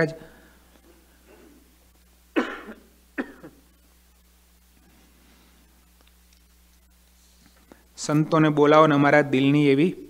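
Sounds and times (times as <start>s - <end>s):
man coughing: 2.4s - 3.7s.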